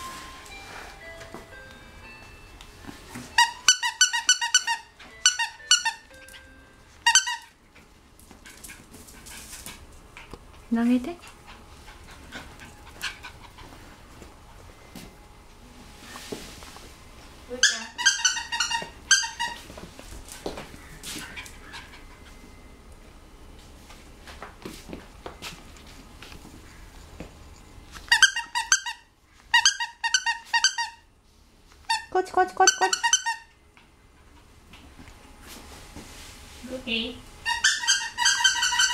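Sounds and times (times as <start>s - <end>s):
squeaky plush toy squeaks: 3.4s - 6.2s, 7.0s - 7.5s, 17.6s - 19.6s, 28.1s - 31.0s, 31.9s - 33.5s, 37.4s - 38.9s
puppy panting: 7.8s - 14.5s, 20.1s - 22.6s, 32.7s - 34.7s.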